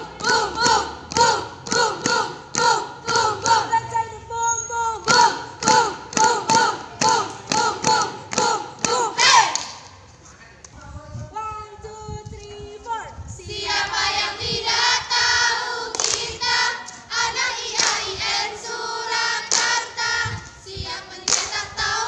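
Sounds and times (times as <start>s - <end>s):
women shouting a cheer chant: 0.0s - 9.6s.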